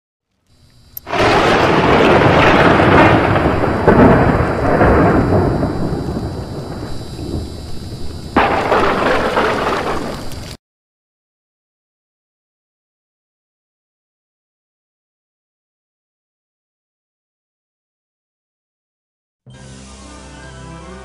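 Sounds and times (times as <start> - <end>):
sharp crack: 1.0 - 10.6
sudden crash: 1.1 - 10.5
loud rolling rumble: 1.1 - 10.6.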